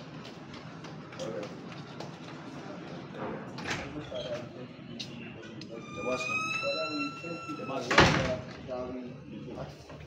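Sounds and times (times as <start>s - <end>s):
people talking: 2.5s - 9.9s.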